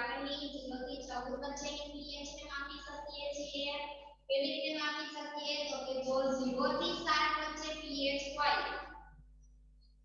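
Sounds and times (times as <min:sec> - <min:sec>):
woman speaking: 0:00.0 - 0:08.9.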